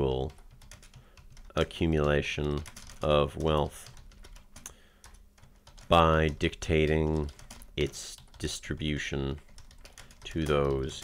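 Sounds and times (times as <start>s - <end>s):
quiet keyboard typing: 0.0s - 11.0s.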